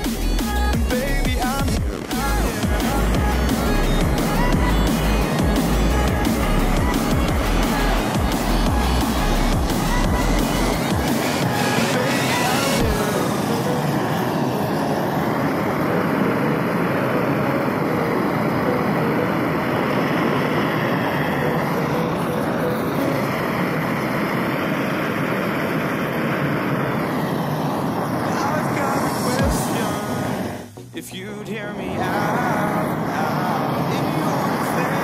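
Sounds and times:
gas torch flame rushing: 0.0 - 30.9, 31.8 - 35.0.

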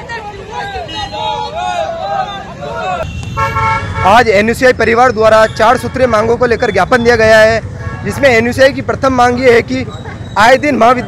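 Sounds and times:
men shouting slogans: 0.0 - 3.0
vehicle horn: 3.0 - 4.2.

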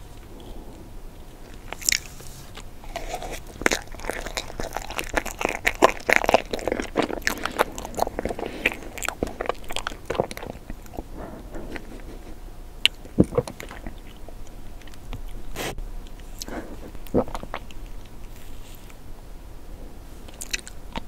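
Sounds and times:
crunchy bites and chewing: 0.0 - 12.2, 12.8 - 19.0, 20.2 - 21.0.

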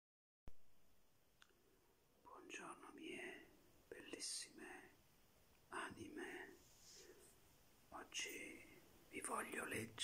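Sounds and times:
man whispering: 2.2 - 5.0, 5.7 - 7.3, 7.9 - 10.0.

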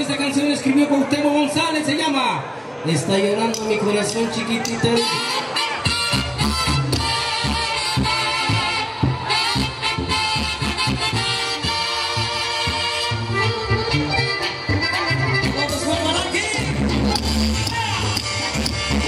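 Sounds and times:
live band with horns and saxophones: 3.0 - 19.0
drum and bass beat: 5.8 - 11.8, 12.7 - 19.0.

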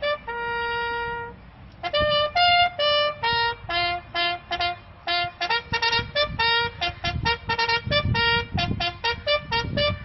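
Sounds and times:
bugle call: 0.0 - 10.0.

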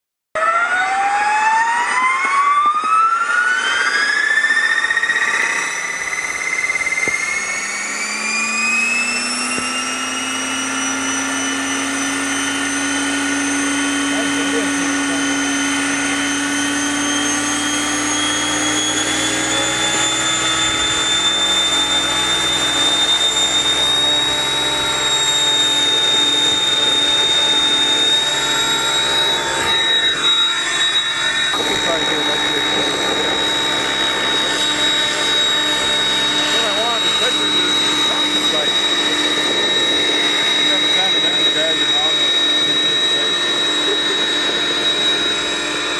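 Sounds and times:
electric helicopter motor whine: 0.4 - 45.9.

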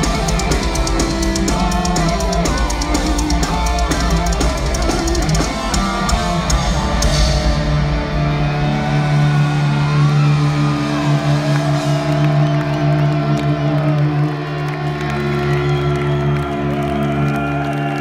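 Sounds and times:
crowd cheering and whooping: 0.0 - 18.0.

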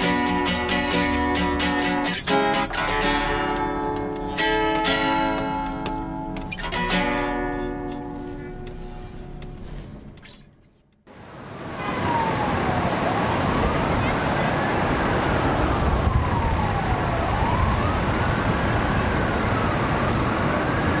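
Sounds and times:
traffic rumble: 11.2 - 21.0
siren wailing: 11.7 - 21.0.

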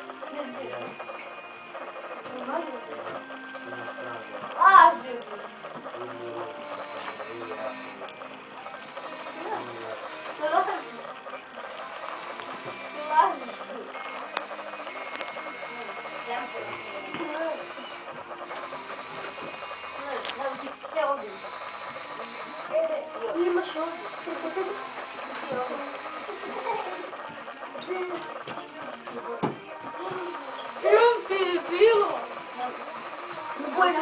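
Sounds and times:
indistinct voices talking: 0.3 - 34.0.

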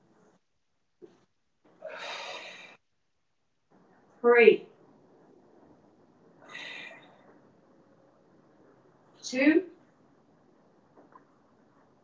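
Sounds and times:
person exhaling: 1.8 - 2.8.

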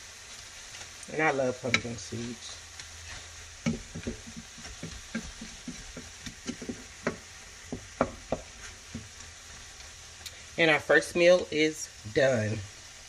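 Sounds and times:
food sizzling: 0.0 - 13.0
spoon scraping and knocking pan: 2.8 - 9.9.

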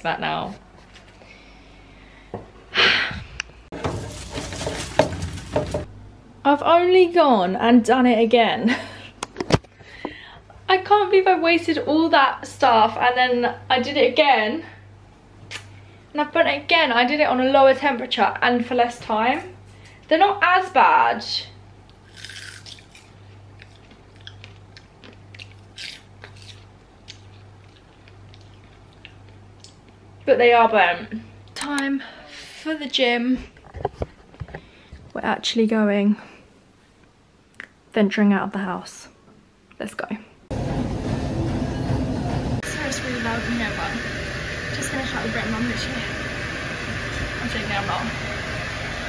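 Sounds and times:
crisps scraping on a metal tray: 3.8 - 5.9
chewing crisp crackles: 21.9 - 30.2.

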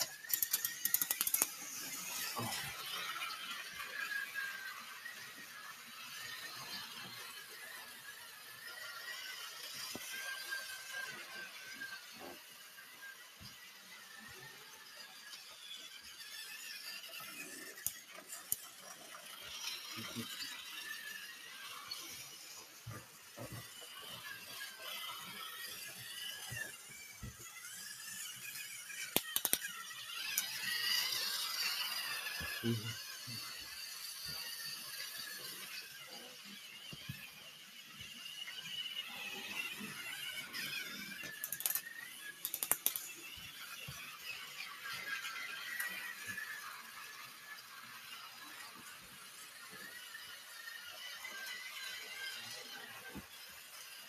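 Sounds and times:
toy train wheels squealing: 0.0 - 54.0
sharp clicks: 0.3 - 1.5, 29.1 - 29.7, 42.4 - 43.1.

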